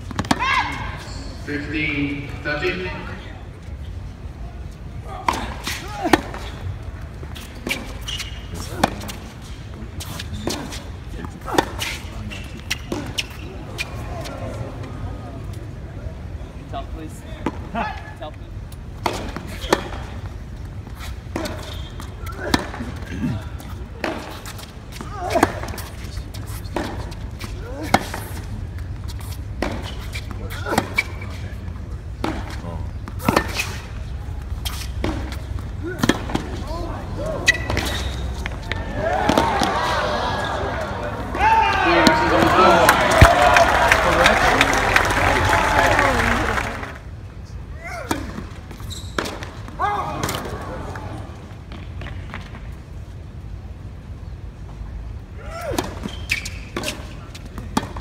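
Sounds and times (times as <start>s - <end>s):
tennis balls struck by rackets: 0.0s - 0.6s, 5.2s - 13.8s, 19.0s - 20.4s, 21.2s - 44.3s, 47.9s - 52.7s, 55.6s - 58.0s
balls bouncing on hard court: 0.0s - 0.8s, 7.2s - 9.3s, 10.0s - 13.9s, 21.0s - 46.8s, 47.8s - 52.7s
crowd chatter: 2.1s - 18.2s, 29.8s - 48.1s.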